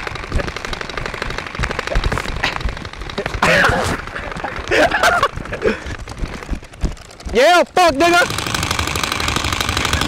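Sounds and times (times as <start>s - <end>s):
gel-ball blasters firing rapidly: 0.0s - 4.1s.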